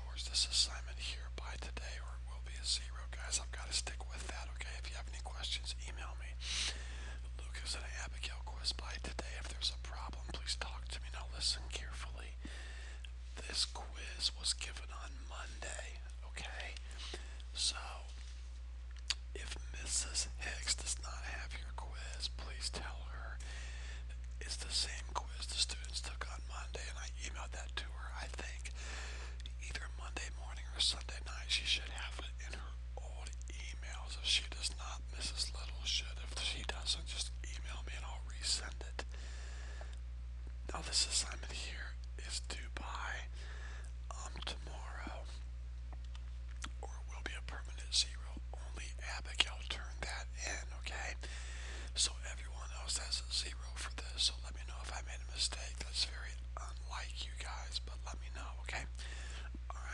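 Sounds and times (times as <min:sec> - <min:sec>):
person whispering: 0:00.0 - 0:12.6, 0:13.3 - 0:18.2, 0:19.1 - 0:23.4, 0:24.4 - 0:28.8, 0:29.4 - 0:39.1, 0:40.7 - 0:43.3, 0:44.1 - 0:45.4, 0:46.6 - 0:51.3, 0:52.0 - 0:59.9
low electrical hum: 0:00.0 - 0:59.9.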